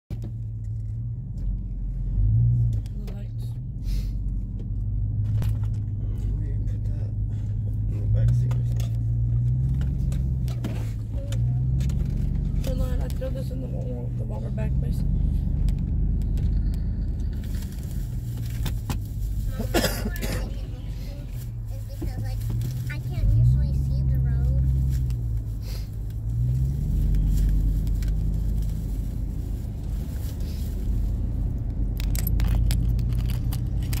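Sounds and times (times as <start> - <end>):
car engine: 0.1 - 34.0
road noise inside car: 0.1 - 34.0
rattle: 15.6 - 19.5.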